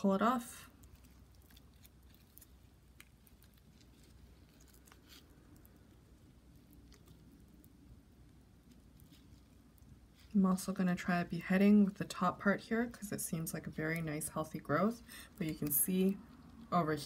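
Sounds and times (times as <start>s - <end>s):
fingers rustling in soil: 0.7s - 7.7s, 8.6s - 10.7s.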